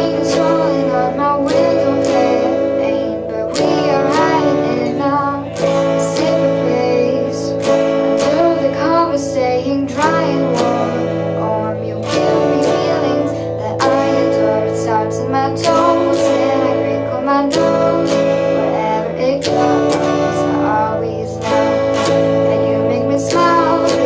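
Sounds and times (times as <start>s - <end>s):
electric guitar strumming: 0.0s - 24.0s
girl singing: 0.0s - 24.0s.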